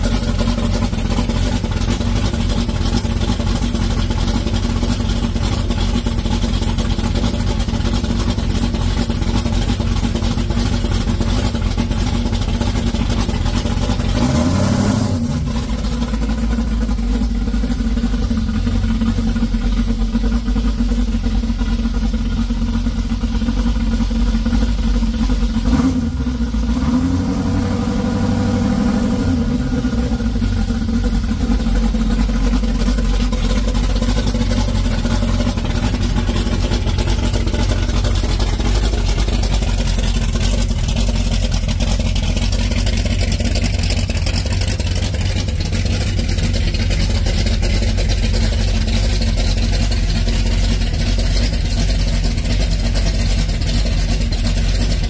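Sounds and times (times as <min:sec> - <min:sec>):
truck engine running: 0:00.0 - 0:55.0.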